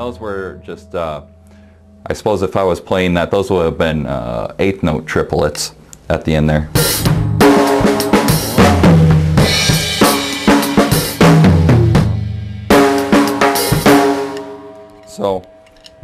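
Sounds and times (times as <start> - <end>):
drum kit playing: 6.7 - 14.9.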